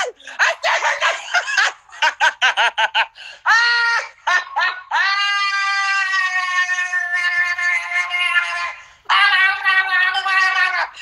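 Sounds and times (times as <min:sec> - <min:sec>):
man laughing hysterically: 0:00.0 - 0:11.0.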